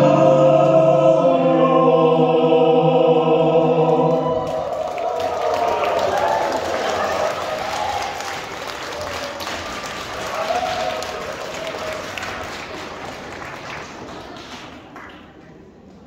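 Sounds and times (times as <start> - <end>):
audience applauding: 4.1 - 15.5.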